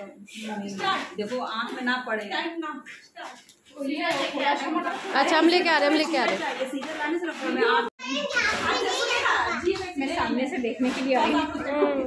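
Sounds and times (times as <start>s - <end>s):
women and girl talking: 1.8s - 12.0s.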